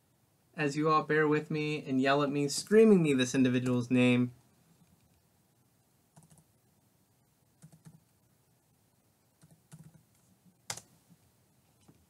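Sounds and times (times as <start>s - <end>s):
faint keyboard typing: 6.1s - 6.6s, 7.5s - 8.3s, 9.3s - 12.0s.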